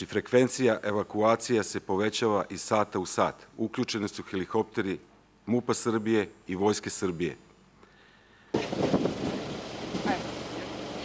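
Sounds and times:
wind buffeting microphone: 8.6 - 11.0.

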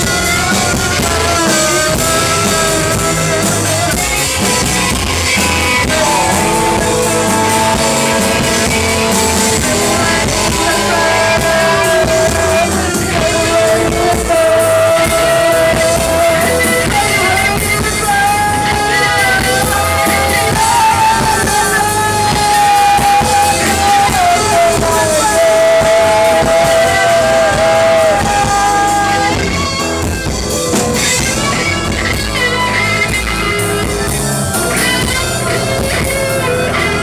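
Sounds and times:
bass guitar: 0.0 - 37.0
drums: 0.0 - 37.0
long held high notes: 0.0 - 37.0
person singing: 0.0 - 37.0.

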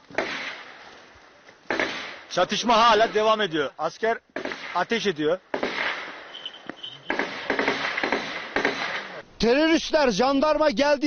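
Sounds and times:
gunshots: 0.1 - 0.8, 1.7 - 3.5, 4.4 - 6.3, 7.0 - 9.2.

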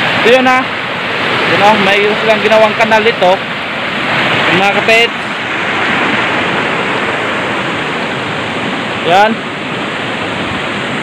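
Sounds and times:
water rushing over rocks: 0.0 - 11.0.

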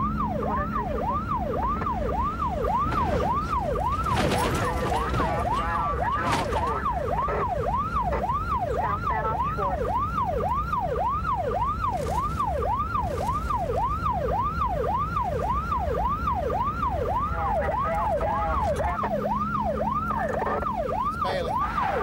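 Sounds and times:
car engine and road rumble: 0.0 - 22.0
police siren yelping: 0.0 - 22.0.

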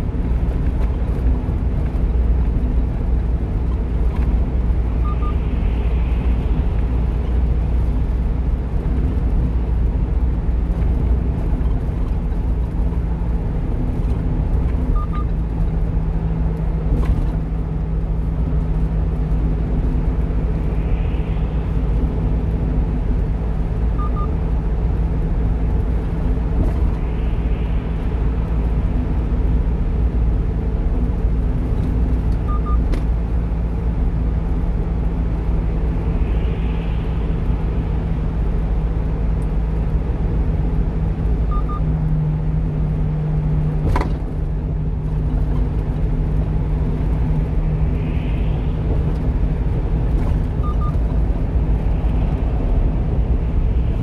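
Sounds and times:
truck engine drone: 0.0 - 54.0
tyre and road rumble: 0.0 - 54.0
faint short double beep: 5.0 - 5.4.

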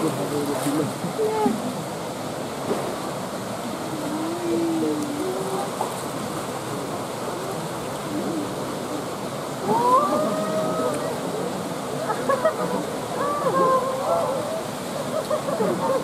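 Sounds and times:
rushing water: 0.0 - 16.0
visitors' voices: 6.8 - 16.0.

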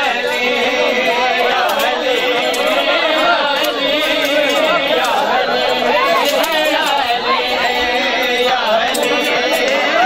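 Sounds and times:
crowd chatter: 0.0 - 10.0
men reciting a lament: 0.0 - 10.0.

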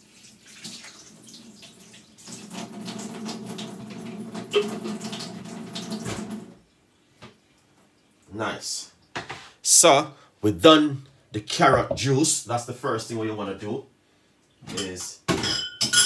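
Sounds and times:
tap water running into sink: 0.0 - 6.6.

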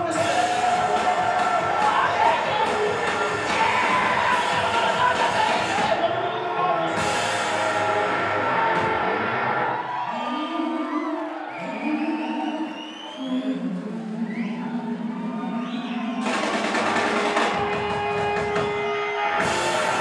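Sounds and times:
rock band playing loudly: 0.0 - 10.0, 16.2 - 20.0.

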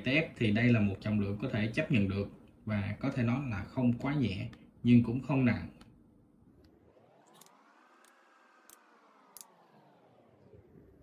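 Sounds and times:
distant pitched hum: 0.0 - 11.0.

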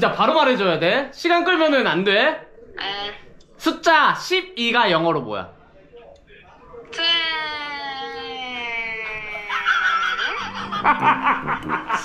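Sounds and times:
men laughing and shrieking: 8.7 - 12.0.

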